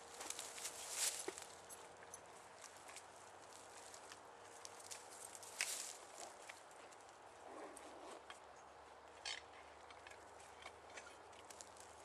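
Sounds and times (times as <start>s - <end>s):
rustling in dry leaves: 0.0s - 7.0s.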